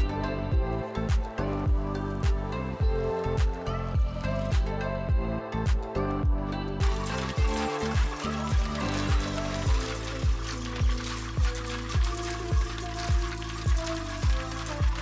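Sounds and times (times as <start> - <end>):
background music with bass drum: 0.0 - 15.0.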